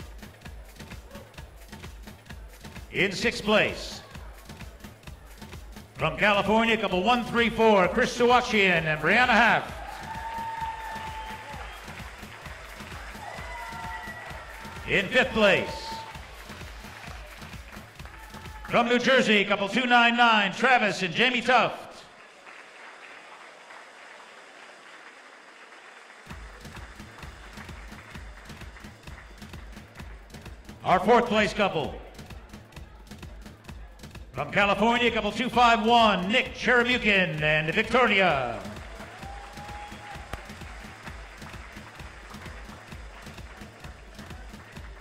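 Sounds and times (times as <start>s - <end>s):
audience applauding: 0.0s - 19.0s, 22.0s - 30.8s, 37.6s - 45.0s.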